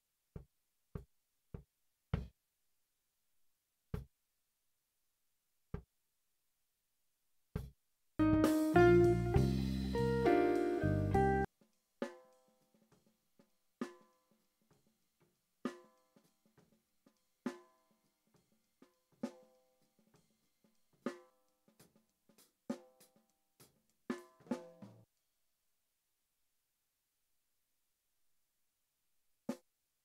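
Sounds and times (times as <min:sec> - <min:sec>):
jazz band playing: 0:08.2 - 0:11.5.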